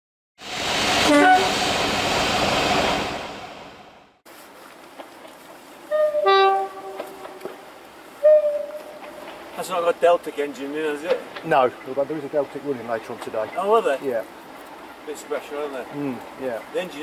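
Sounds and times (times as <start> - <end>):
diesel locomotive running: 0.4 - 4.1, 5.8 - 16.8
two-tone locomotive horn: 1.0 - 1.7, 5.9 - 7.6, 8.2 - 9.4.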